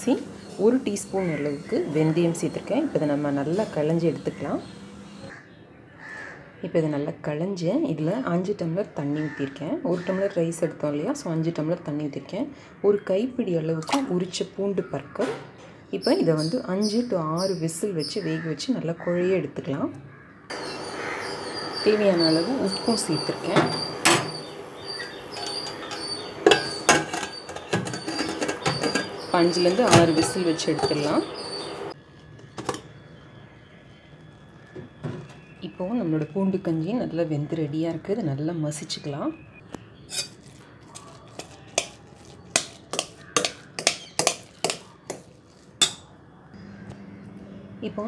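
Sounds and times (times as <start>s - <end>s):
spoon clinking in metal pot: 25.3s - 31.1s, 41.3s - 45.2s
metal pressure cooker lid clanking: 25.3s - 31.2s.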